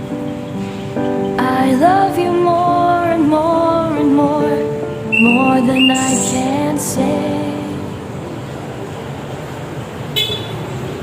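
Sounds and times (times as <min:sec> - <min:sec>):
street traffic noise: 0:00.0 - 0:11.0.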